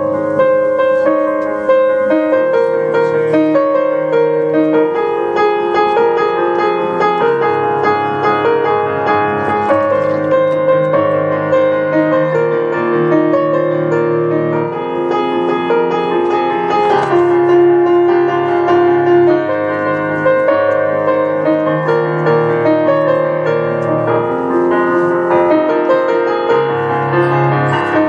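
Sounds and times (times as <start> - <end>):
piano piece: 0.0 - 28.0.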